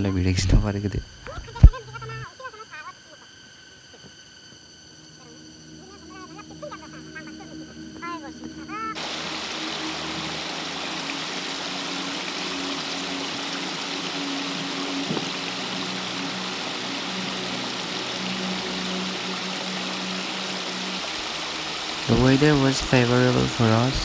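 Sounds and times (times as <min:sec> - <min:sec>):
stream running over stones: 0:09.0 - 0:24.0.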